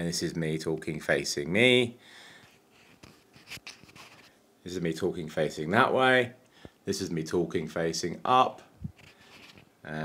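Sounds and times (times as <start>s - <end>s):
breath: 2.0s - 2.6s, 6.5s - 6.8s
fingers handling microphone: 2.8s - 4.4s, 8.8s - 9.7s.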